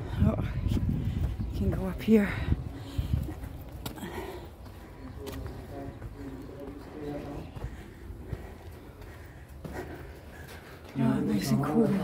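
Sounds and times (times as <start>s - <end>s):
footsteps on gritty rock: 0.7s - 12.0s.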